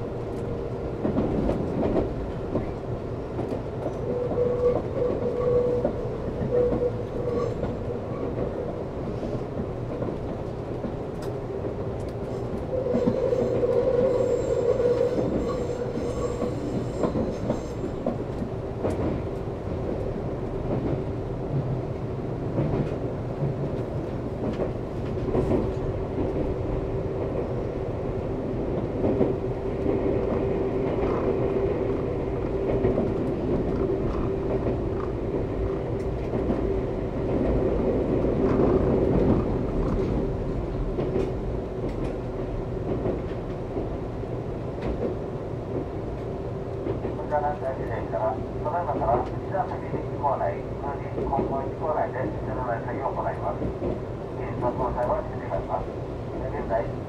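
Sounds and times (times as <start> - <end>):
train rolling rumble: 0.0 - 57.0
rail clicks: 0.1 - 57.0.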